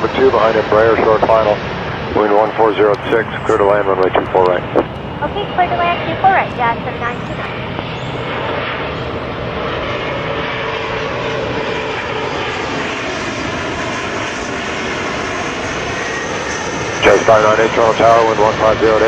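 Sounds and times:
jet engines with faint hum: 0:00.0 - 0:19.0.

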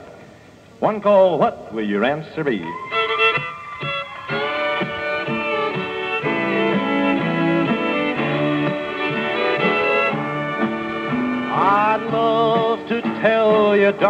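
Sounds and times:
country band playing: 0:02.7 - 0:14.0
fiddle melody: 0:02.7 - 0:14.0.

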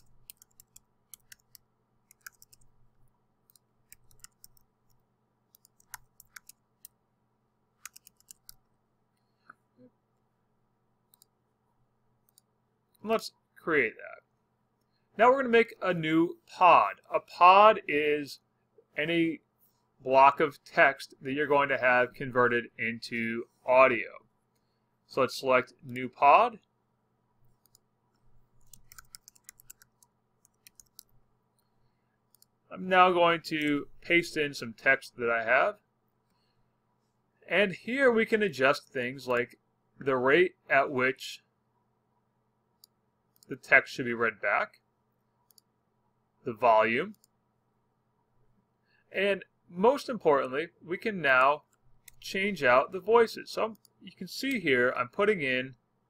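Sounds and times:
faint keyboard typing clicks: 0:00.0 - 0:07.0, 0:07.8 - 0:09.6, 0:27.4 - 0:31.7, 0:32.3 - 0:32.6, 0:45.4 - 0:45.7, 0:51.7 - 0:52.2, 0:53.7 - 0:54.6.

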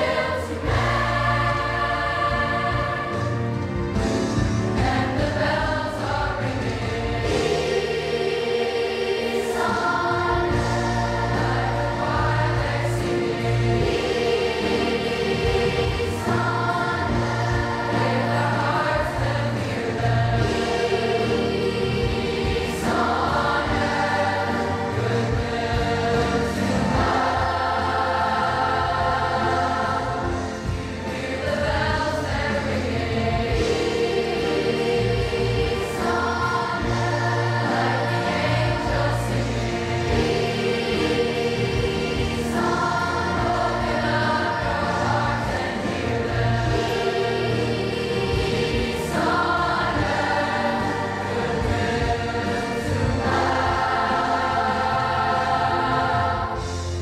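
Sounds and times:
children's choir singing: 0:00.0 - 0:57.0.

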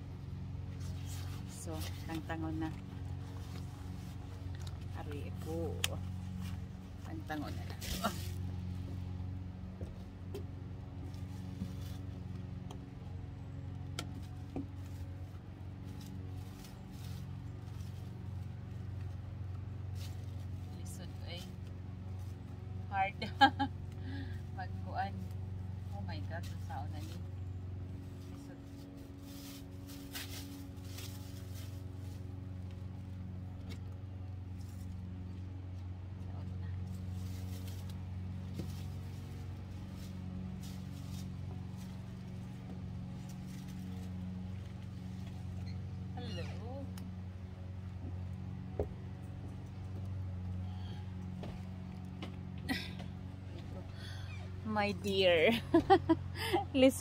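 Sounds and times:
low machine hum: 0:00.0 - 0:57.0.

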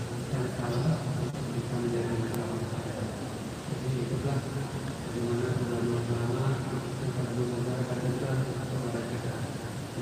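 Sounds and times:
man chanting a prayer: 0:00.2 - 0:10.0.

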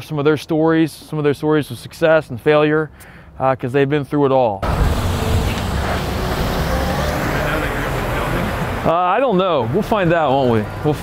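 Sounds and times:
cars rumbling on road: 0:04.6 - 0:11.0.

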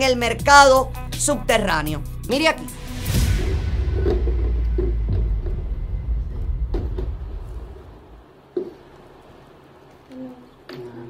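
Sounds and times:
steady low rumble: 0:02.7 - 0:08.4.

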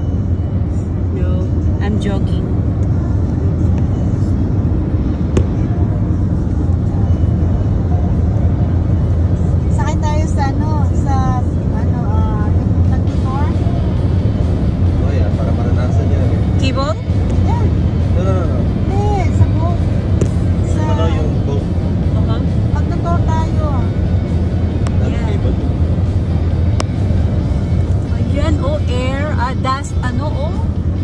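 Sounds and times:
car road and engine noise: 0:00.0 - 0:31.0
voices: 0:01.2 - 0:25.7, 0:27.6 - 0:30.8.

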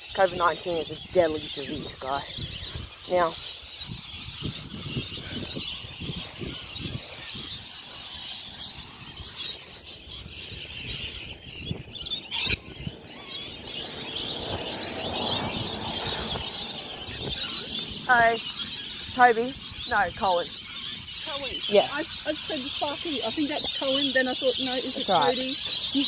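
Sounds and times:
birds chattering: 0:00.0 - 0:26.0.

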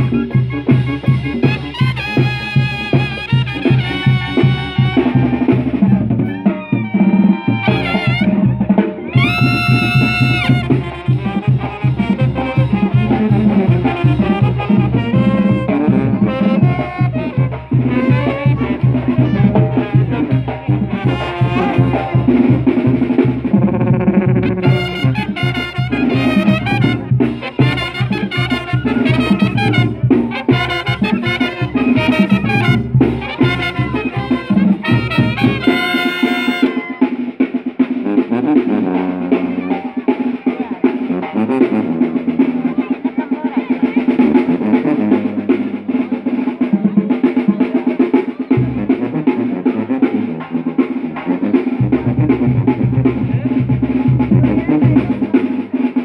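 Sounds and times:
brass band music: 0:00.0 - 0:56.0
driving drum beat: 0:00.0 - 0:56.0.

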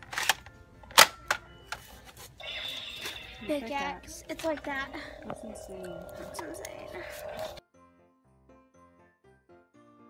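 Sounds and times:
plastic toy clicks and snaps: 0:00.0 - 0:01.5.

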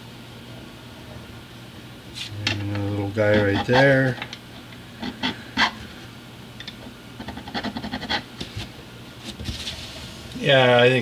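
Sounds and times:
file scraping metal fret wire: 0:03.2 - 0:04.2.

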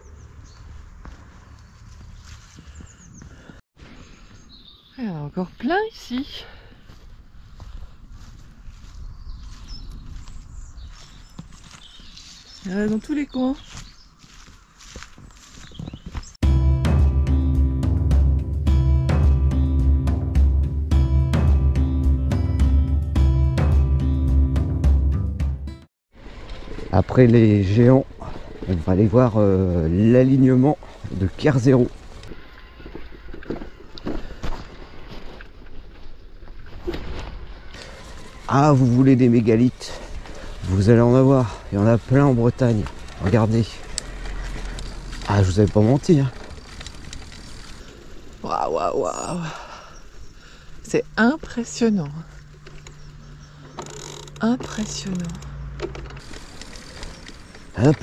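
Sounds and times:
bicycle rolling on dirt path: 0:00.1 - 0:03.5, 0:06.9 - 0:16.4, 0:26.1 - 0:48.6, 0:51.4 - 0:58.0
wind rumbling on microphone: 0:07.1 - 0:12.6.

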